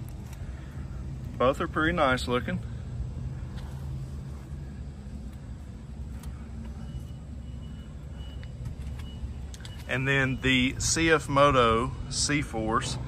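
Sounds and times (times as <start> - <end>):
low mechanical hum: 0.0 - 12.1.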